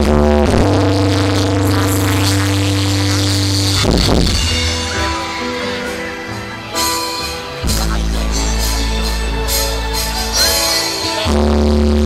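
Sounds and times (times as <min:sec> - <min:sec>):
live band music over pa: 0:00.0 - 0:12.0.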